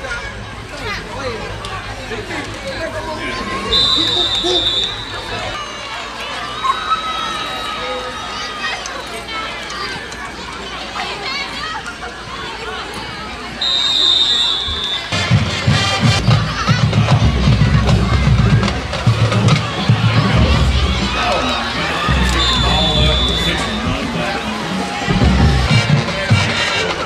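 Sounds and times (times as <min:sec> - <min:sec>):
crowd cheering and voices: 0:00.0 - 0:27.0
crowd noise: 0:00.0 - 0:27.0
high steady whistle: 0:03.7 - 0:05.4, 0:13.6 - 0:15.2, 0:22.1 - 0:23.9
music with pounding drum beat: 0:15.2 - 0:21.5, 0:25.0 - 0:27.0.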